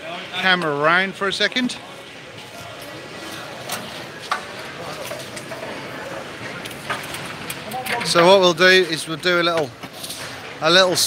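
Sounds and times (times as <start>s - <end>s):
faint distant voices: 0.0s - 11.0s
reverberant hall background noise: 0.0s - 11.0s.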